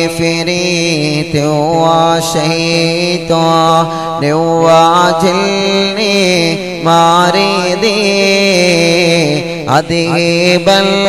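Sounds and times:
men chanting devotional song: 0.0 - 11.0.

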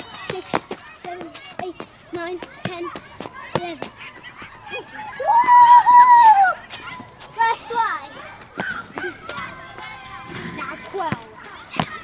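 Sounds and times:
child's high-pitched shout: 4.7 - 6.6.

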